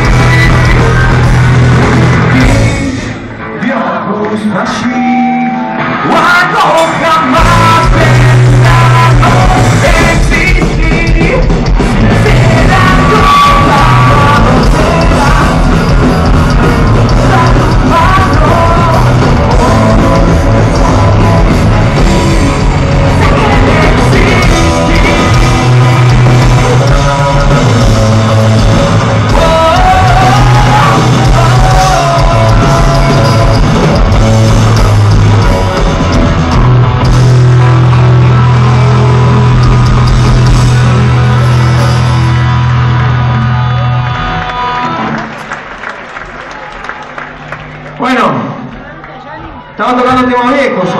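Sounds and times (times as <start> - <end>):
punk rock band playing: 0.0 - 48.0.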